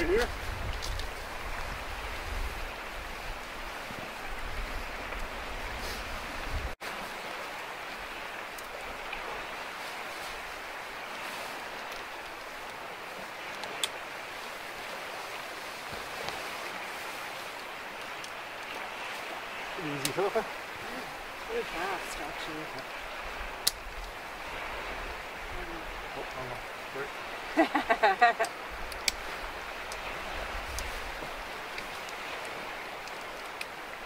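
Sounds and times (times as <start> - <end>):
running water: 0.0 - 34.0
wind rumbling on microphone: 0.0 - 34.0
rain hissing: 14.3 - 34.0.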